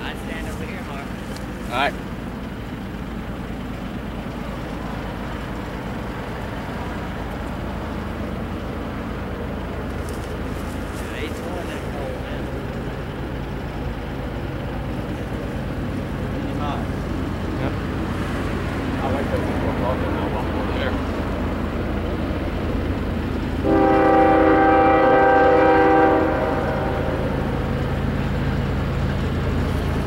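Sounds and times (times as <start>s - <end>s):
diesel locomotive engine drone: 0.0s - 30.0s.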